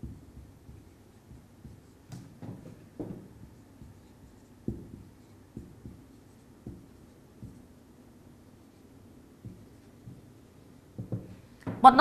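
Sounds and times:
marker writing on whiteboard: 0.0s - 11.5s
marker tapping whiteboard: 0.0s - 12.0s.

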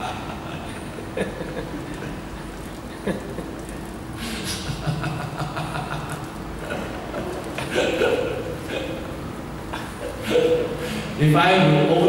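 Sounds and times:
man laughing into microphone: 0.0s - 8.6s.

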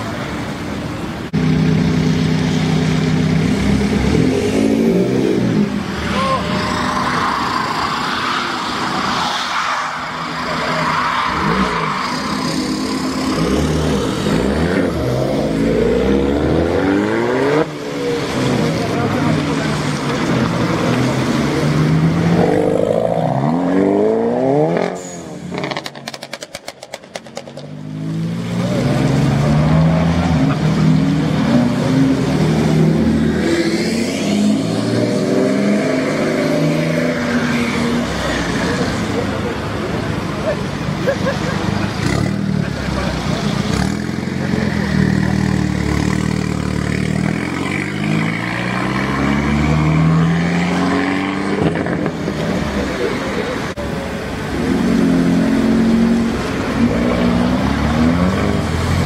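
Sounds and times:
car engines revving: 0.0s - 59.0s
voices: 5.4s - 13.4s.

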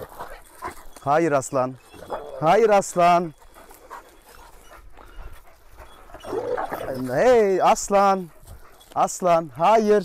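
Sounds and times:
dog growling: 6.2s - 7.3s.

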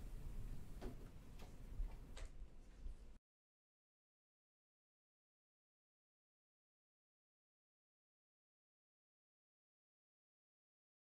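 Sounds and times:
low room rumble: 0.0s - 3.2s.

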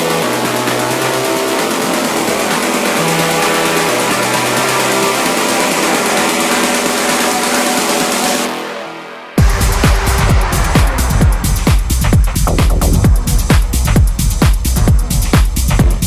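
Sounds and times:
low bass alternating notes: 9.4s - 16.0s.

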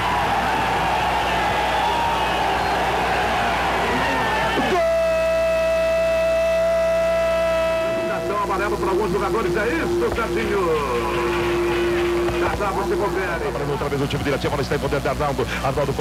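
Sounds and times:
steady held tone: 1.6s - 15.4s.

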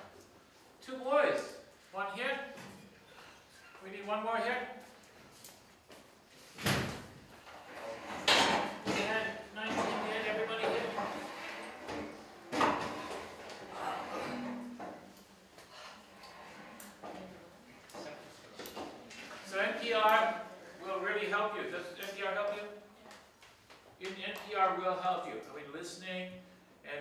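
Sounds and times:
indistinct voices in a room: 0.0s - 27.0s.

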